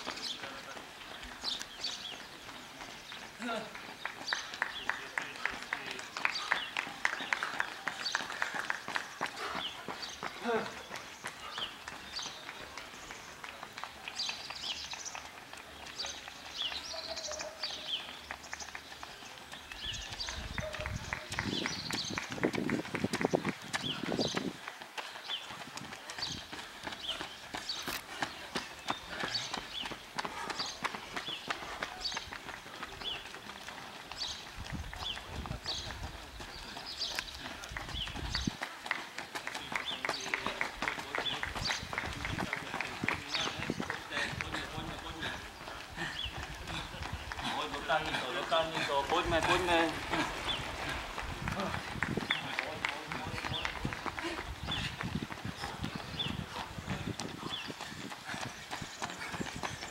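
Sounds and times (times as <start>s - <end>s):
footsteps slapping on asphalt: 0.0s - 59.9s
small birds chirping: 0.0s - 59.9s.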